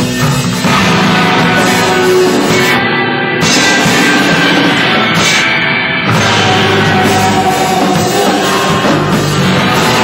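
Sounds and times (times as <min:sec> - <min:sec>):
drums: 0:00.0 - 0:10.0
electric guitar: 0:00.0 - 0:10.0
rock band playing live: 0:00.0 - 0:10.0.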